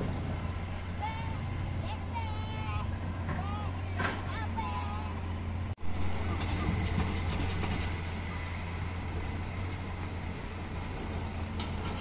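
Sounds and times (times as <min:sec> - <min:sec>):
distant diesel engine humming: 0:00.0 - 0:12.0.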